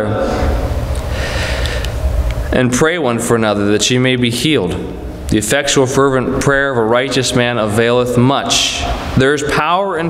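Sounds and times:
man speaking: 0.0s - 0.6s, 2.5s - 10.0s
man breathing in near microphone: 0.2s - 2.2s.

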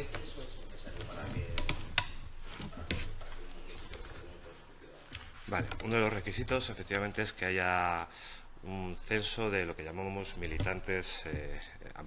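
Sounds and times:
muffled handling noise: 0.0s - 7.2s.

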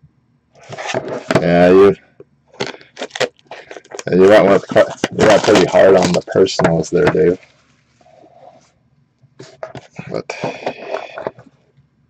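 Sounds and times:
man speaking: 1.4s - 2.0s, 4.0s - 7.4s, 10.0s - 11.3s.

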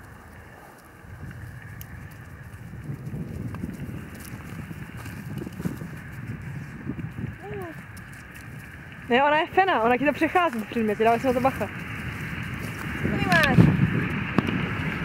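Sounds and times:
footsteps on frozen grass: 0.0s - 13.9s.

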